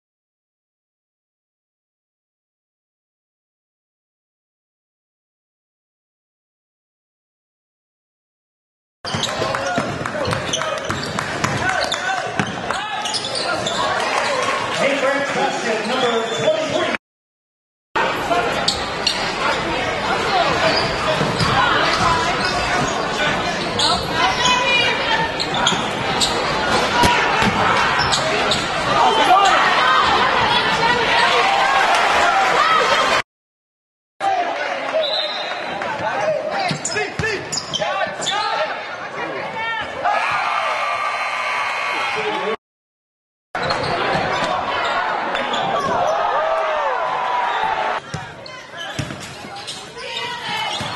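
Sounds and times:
basketball bouncing on court: 9.1 - 13.4, 27.0 - 28.2, 48.0 - 50.9
crowd voices and shouts: 9.1 - 17.0, 18.0 - 33.2, 34.2 - 42.6, 43.6 - 50.9.

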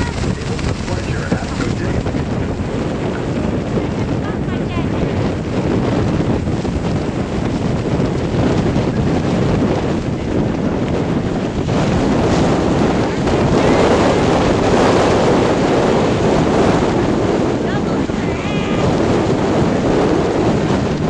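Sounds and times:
churning river water: 0.0 - 21.0
waterfall roar: 0.0 - 21.0
wind buffeting microphone: 0.0 - 21.0.

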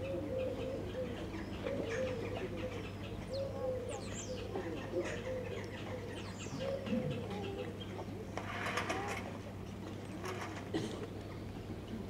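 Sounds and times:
small birds chirping: 0.0 - 8.2.

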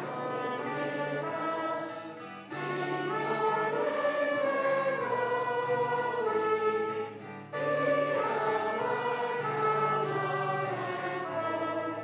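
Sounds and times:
group singing a hymn: 0.0 - 12.0
sustained instrumental accompaniment: 0.0 - 12.0.

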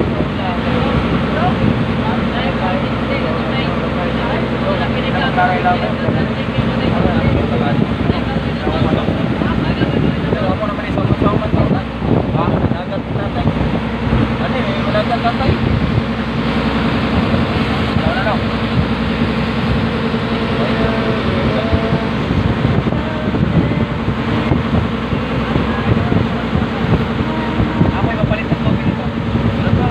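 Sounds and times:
boat engine running: 0.0 - 29.9
wind buffeting microphone: 0.0 - 29.9.

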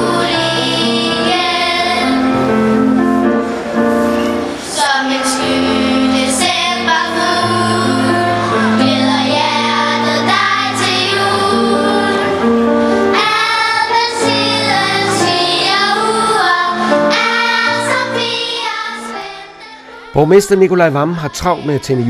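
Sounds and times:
children's choir singing: 0.0 - 22.0
instrumental accompaniment: 0.0 - 22.0.

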